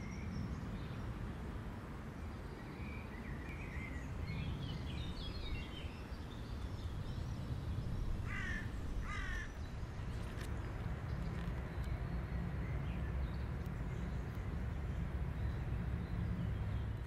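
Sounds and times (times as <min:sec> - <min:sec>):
small birds chirping: 0:02.2 - 0:17.0
harsh bird calls: 0:08.2 - 0:09.6.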